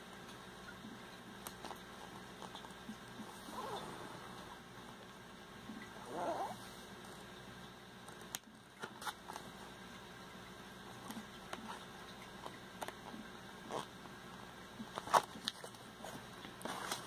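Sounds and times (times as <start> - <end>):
paper pages turning: 14.9 - 17.0.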